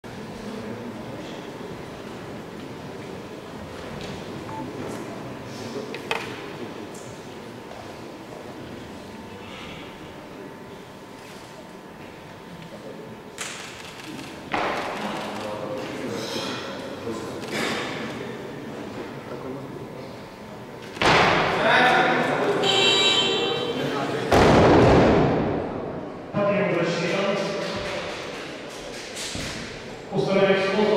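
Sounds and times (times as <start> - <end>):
sports hall background noise: 0.0 - 30.9.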